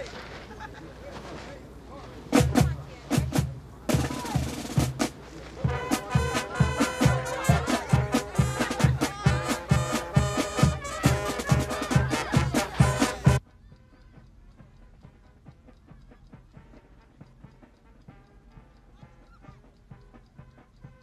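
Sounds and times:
marching band playing: 0:02.2 - 0:13.4, 0:14.5 - 0:21.0
drum beats: 0:02.2 - 0:21.0.

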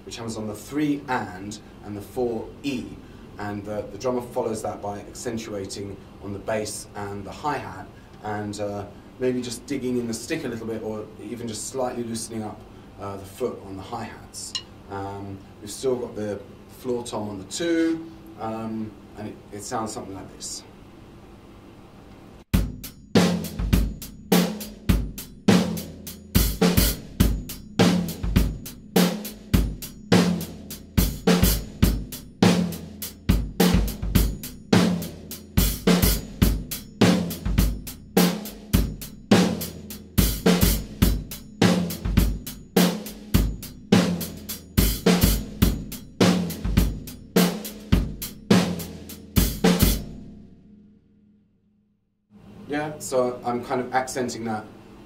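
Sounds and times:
drum kit playing disco groove: 0:22.5 - 0:50.1.

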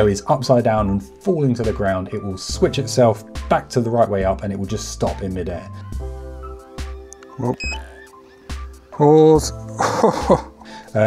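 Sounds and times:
background music chords and bass: 0:00.0 - 0:11.0.

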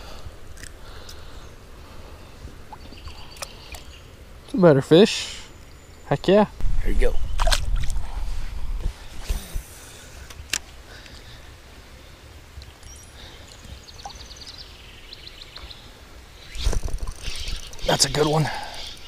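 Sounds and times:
water splashing: 0:07.4 - 0:08.0.

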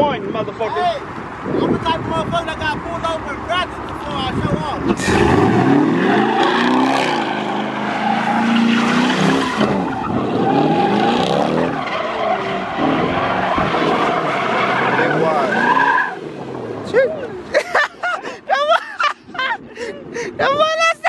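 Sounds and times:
tires squealing: 0:00.6 - 0:17.5
tire chirps: 0:00.9 - 0:17.5
car engine revving: 0:04.8 - 0:17.4.

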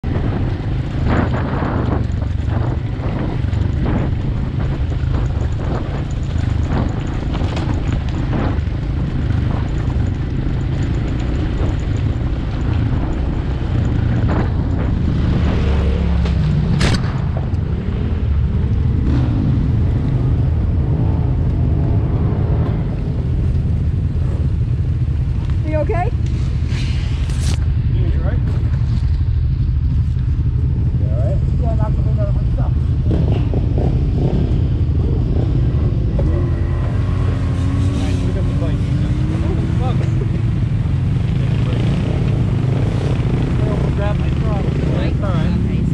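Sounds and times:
wind on microphone: 0:00.0 - 0:27.9
dirt bike engine rumbling: 0:00.0 - 0:45.9.

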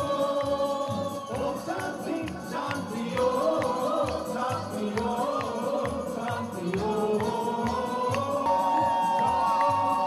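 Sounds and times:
backing music with percussive beat: 0:00.0 - 0:10.0
group of voices singing: 0:00.0 - 0:10.0.

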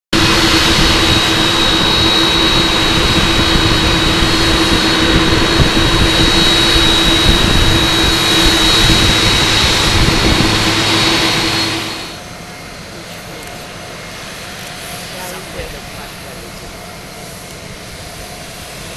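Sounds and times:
jet engines roaring with whine: 0:00.1 - 0:18.9.

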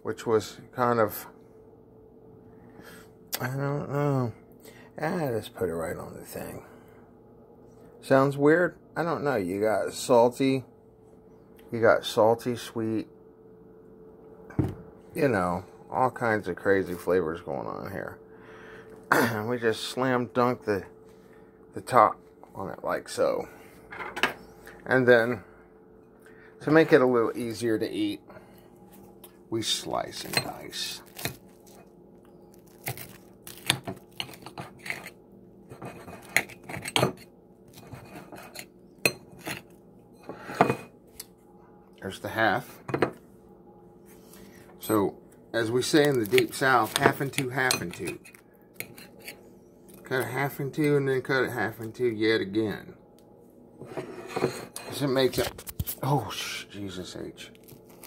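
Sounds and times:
faint steady hum: 0:00.0 - 0:58.0
knife scraping ceramic plate: 0:34.2 - 0:37.2, 0:37.8 - 0:40.9, 0:48.1 - 0:49.4, 0:53.8 - 0:55.0.

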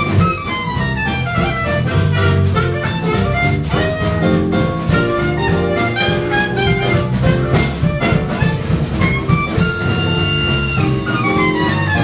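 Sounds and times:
jazz band playing: 0:00.0 - 0:12.0
held high wind instrument note: 0:05.0 - 0:12.0.

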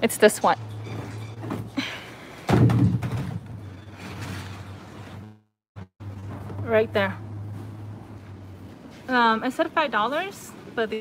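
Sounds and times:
plastic pool heavy thud: 0:02.5 - 0:03.6.

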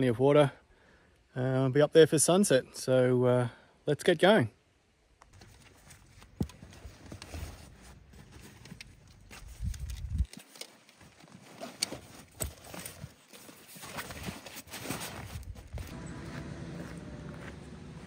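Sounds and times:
fabric rustling: 0:05.4 - 0:15.9.

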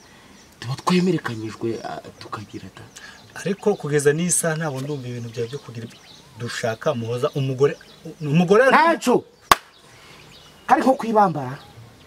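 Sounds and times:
man speaking: 0:00.6 - 0:09.3.

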